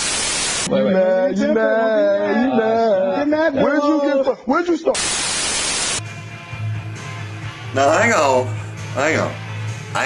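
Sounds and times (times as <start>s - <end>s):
tv static hiss: 0.0s - 0.7s, 5.0s - 6.0s.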